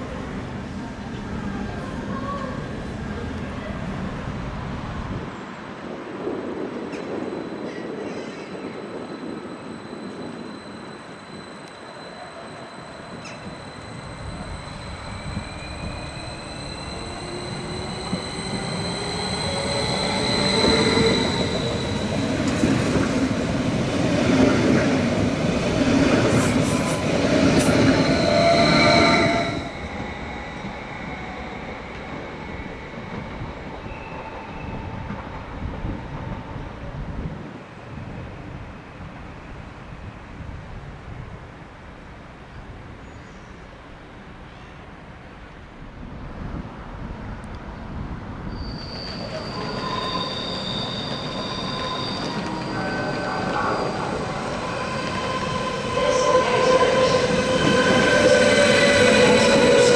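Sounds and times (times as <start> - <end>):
electric train whine passing: 2.8 - 40.4, 46.8 - 59.9.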